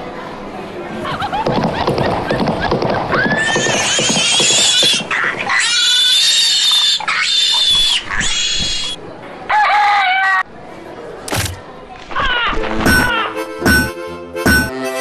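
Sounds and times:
cartoon pig squealing: 3.1s - 10.4s.

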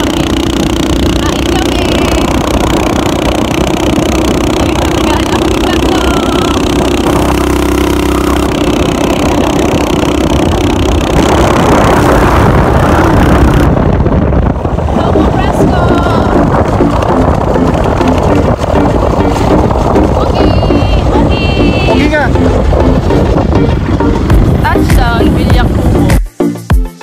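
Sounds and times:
wind buffeting microphone: 0.0s - 26.2s
motorcycle engine running: 0.0s - 26.3s.

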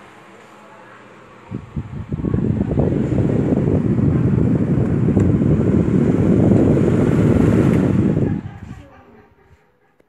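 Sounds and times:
desk fan wind noise: 0.0s - 10.0s.

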